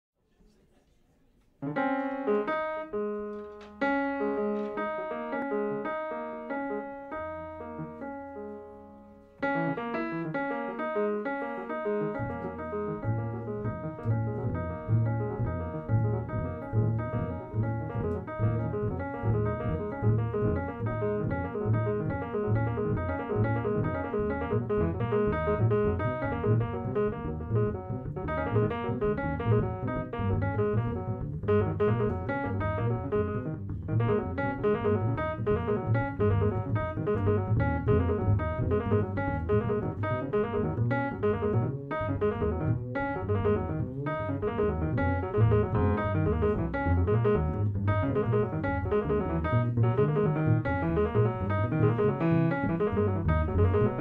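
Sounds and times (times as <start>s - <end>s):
acoustic piano playing: 1.6s - 54.0s
double bass pulse: 12.1s - 54.0s.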